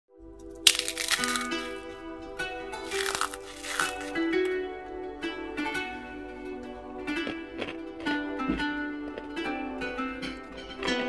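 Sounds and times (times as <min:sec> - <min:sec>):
background music: 0:00.1 - 0:11.0
fried dough snapping and crunching: 0:00.6 - 0:01.8, 0:02.8 - 0:04.6.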